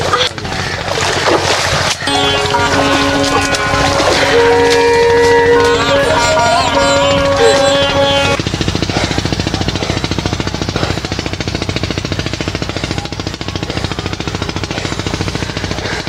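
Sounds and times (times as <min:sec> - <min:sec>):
motor chugging: 0:00.0 - 0:16.0
sitar music: 0:02.1 - 0:08.4.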